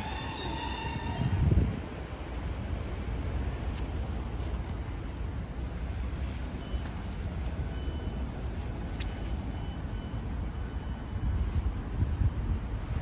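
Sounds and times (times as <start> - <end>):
wind on microphone: 0.0 - 2.2
road traffic rumble: 0.0 - 13.0.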